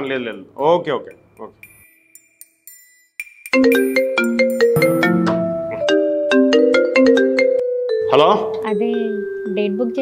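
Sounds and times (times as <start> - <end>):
marimba-like phone ringtone: 1.6 - 10.0.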